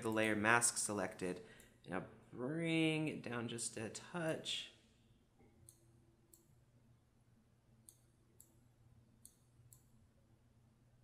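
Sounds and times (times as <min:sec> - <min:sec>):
computer mouse clicks: 0:05.6 - 0:06.6, 0:07.8 - 0:08.6, 0:09.2 - 0:10.0.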